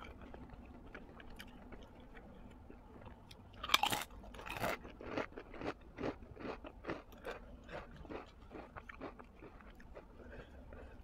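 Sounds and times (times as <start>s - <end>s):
wet chewing: 0.0s - 11.0s.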